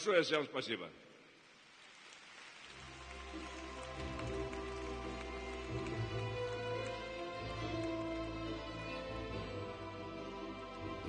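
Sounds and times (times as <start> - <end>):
audience applause: 1.9 - 9.4
music: 2.8 - 11.0.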